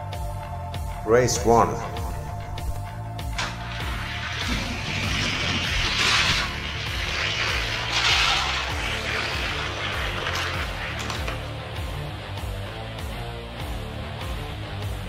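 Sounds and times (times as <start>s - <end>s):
background music with bass line: 0.0s - 15.0s
toy cars rolling down plastic track: 3.4s - 11.5s.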